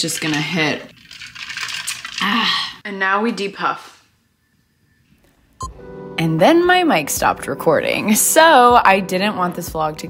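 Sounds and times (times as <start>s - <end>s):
woman's voice: 0.0s - 0.9s, 2.2s - 4.0s, 6.2s - 10.0s
ice cubes clinking in plastic tumbler: 0.0s - 2.5s.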